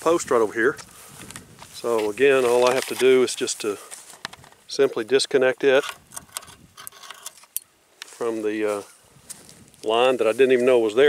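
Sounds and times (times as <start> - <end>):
carabiner clicking and jingling: 5.7 - 7.7.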